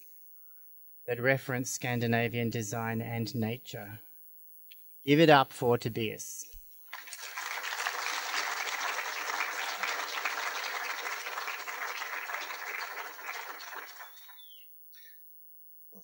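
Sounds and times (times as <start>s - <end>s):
audience applauding: 6.9s - 14.6s.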